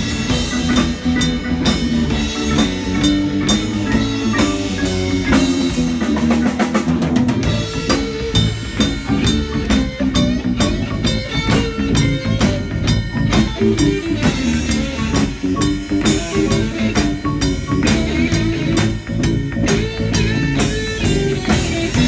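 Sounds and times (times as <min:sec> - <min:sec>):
blues band playing: 0:00.0 - 0:22.0.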